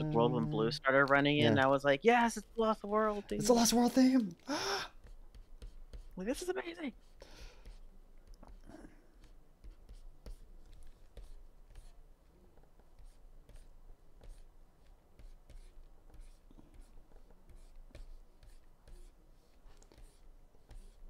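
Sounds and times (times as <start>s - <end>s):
stylus scratching on tablet: 2.2s - 4.1s, 5.0s - 21.0s.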